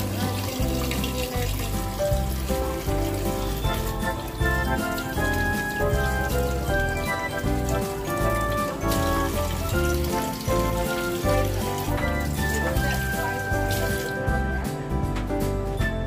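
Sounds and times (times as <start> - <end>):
tap water running into sink: 0.0 - 14.8
background music with bass line: 0.0 - 16.0.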